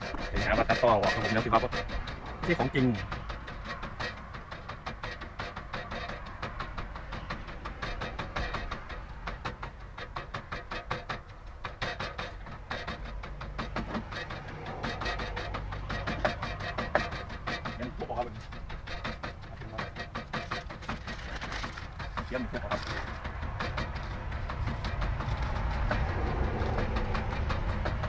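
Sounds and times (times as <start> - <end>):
wooden pestle pounding in mortar: 0.0 - 28.0.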